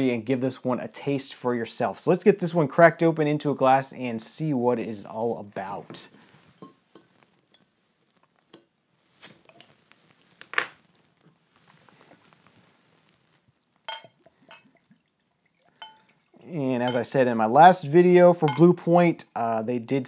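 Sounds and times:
faint handling sounds: 5.0 - 17.3
glass clinking on glass: 6.6 - 7.1, 13.9 - 14.8, 15.8 - 16.2, 16.8 - 17.1, 18.5 - 18.8.

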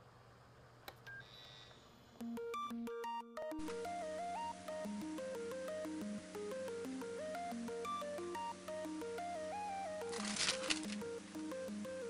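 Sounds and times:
faint hum and hiss: 0.0 - 2.5.

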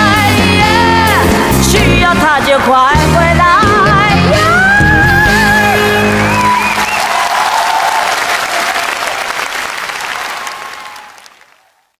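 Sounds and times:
audience applauding: 5.9 - 12.0.

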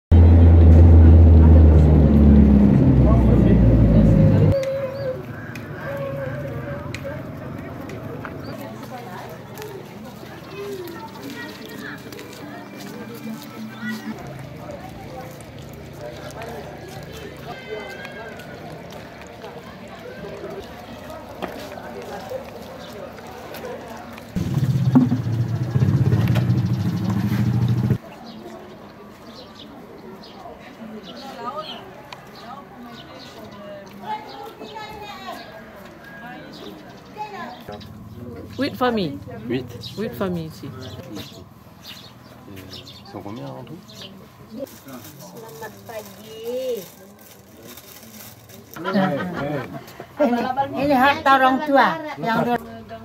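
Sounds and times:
vehicle engine drone: 0.1 - 4.6, 24.4 - 28.0
road noise: 0.1 - 48.8.

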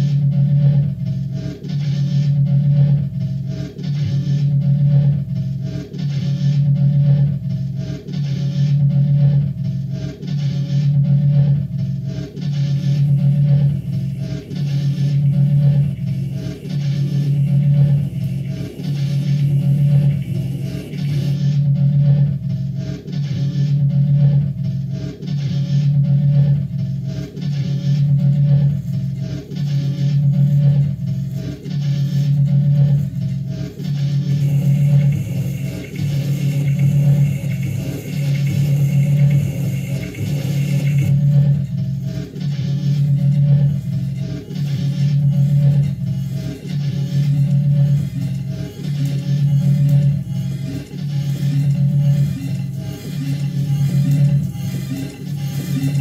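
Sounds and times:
throbbing electronic drone: 0.0 - 56.0
hissing electronic layer: 12.9 - 21.4, 34.3 - 41.2.

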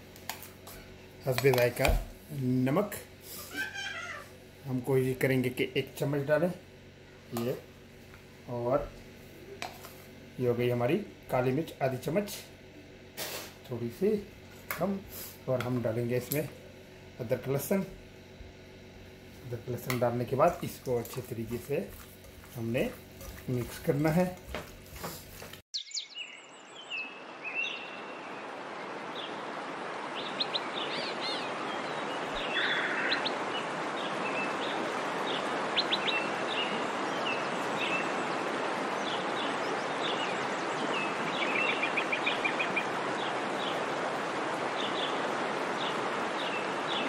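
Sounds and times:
birds chirping and trilling: 25.8 - 47.0.

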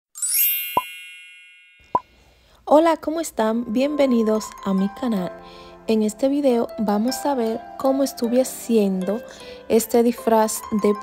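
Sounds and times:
sparkling chime: 0.2 - 2.0.

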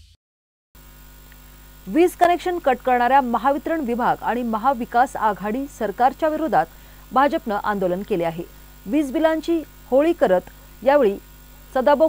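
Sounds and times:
electrical mains hum: 0.8 - 12.0
woman speaking: 1.9 - 11.2, 11.8 - 12.0.

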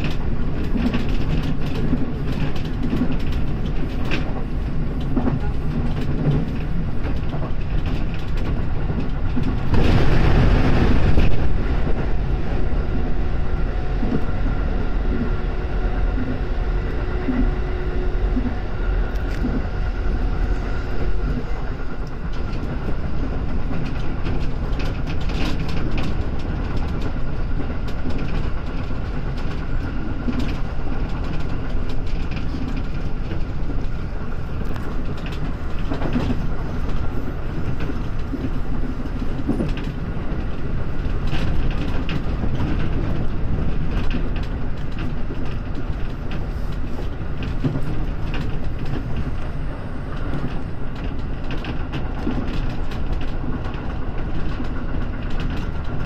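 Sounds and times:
train wheels rumbling on rail: 0.0 - 56.0
short clicks over rail: 18.3 - 19.7.

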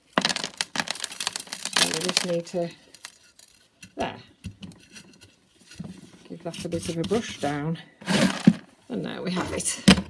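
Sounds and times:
grit pattering on compost: 0.0 - 4.2.

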